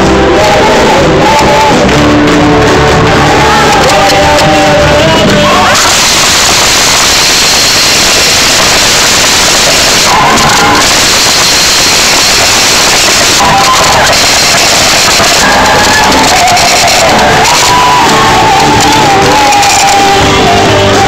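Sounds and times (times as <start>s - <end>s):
crowd singing and cheering: 0.0s - 21.0s
harsh distorted hiss: 0.0s - 21.0s
loud worship music: 0.0s - 21.0s.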